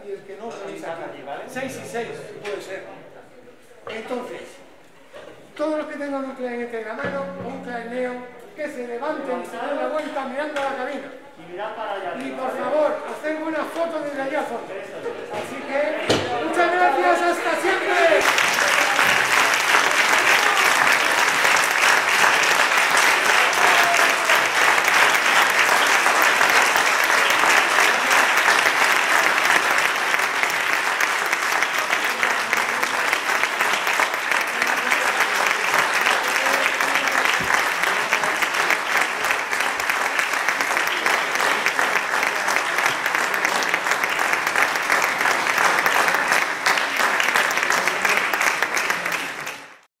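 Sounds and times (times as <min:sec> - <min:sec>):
audience applauding: 0:16.3 - 0:49.9.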